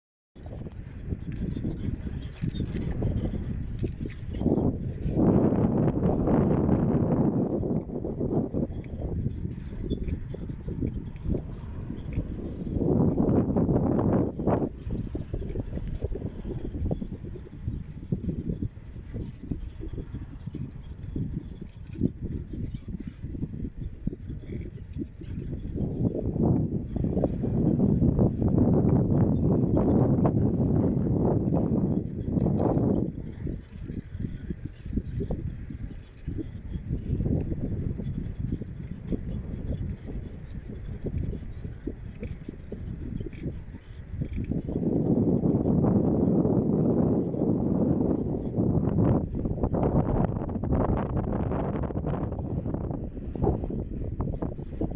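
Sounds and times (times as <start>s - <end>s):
bicycle clicks and rattles: 0.4s - 50.9s, 52.2s - 54.9s
wind buffeting microphone: 0.4s - 54.9s.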